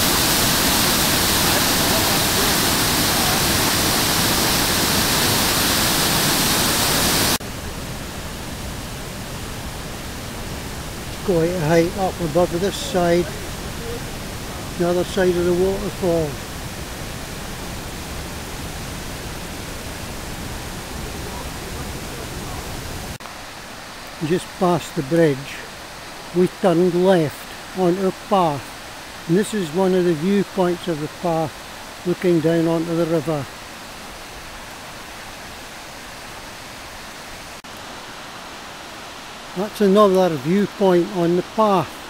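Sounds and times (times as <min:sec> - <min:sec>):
distant river rushing: 0:00.0 - 0:42.0
waterfall rushing over rocks: 0:00.0 - 0:42.0.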